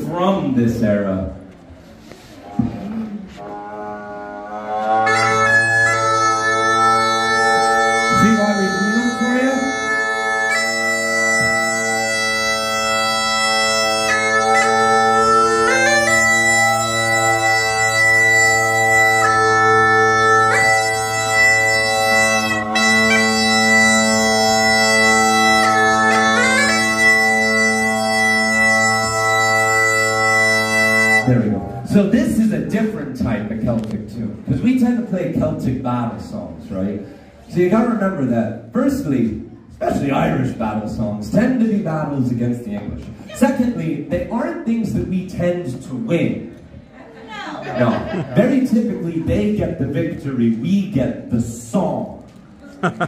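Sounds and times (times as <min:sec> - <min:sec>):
bagpipes playing a melody: 0:03.4 - 0:31.3.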